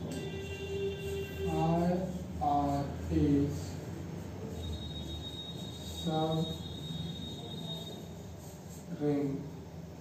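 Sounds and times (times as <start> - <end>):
chalk writing on blackboard: 0.0 - 9.6
high-pitched whine: 4.4 - 8.3.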